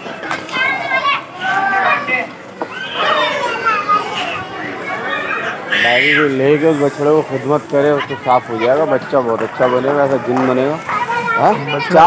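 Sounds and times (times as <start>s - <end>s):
children calling and chattering: 0.0s - 12.0s.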